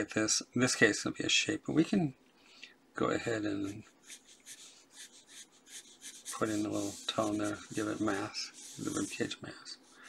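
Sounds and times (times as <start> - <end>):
pencil scratching on paper: 3.5 - 10.0.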